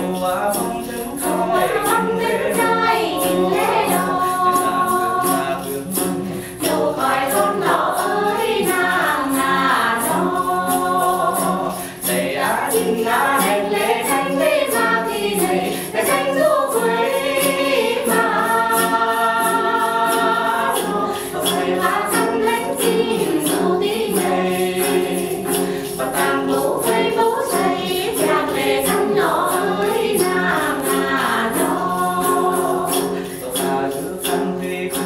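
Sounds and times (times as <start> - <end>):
women singing: 1.2 - 35.0.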